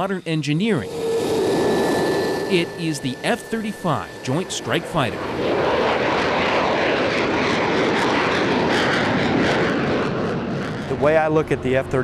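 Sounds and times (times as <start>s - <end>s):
fighter jet taking off: 0.0s - 12.0s.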